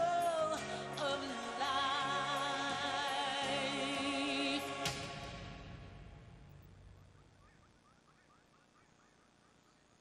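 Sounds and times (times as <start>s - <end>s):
music: 0.0s - 6.7s.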